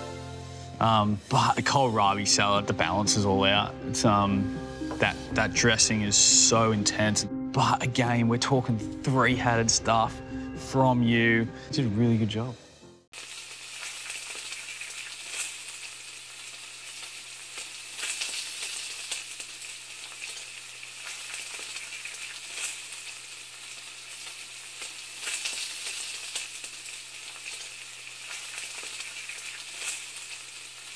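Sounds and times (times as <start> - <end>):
crackling sizzle: 0.0 - 2.6, 13.1 - 30.9.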